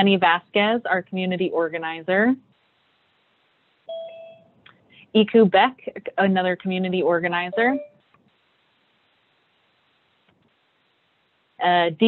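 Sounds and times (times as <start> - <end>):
electronic two-tone chime: 3.9 - 4.5.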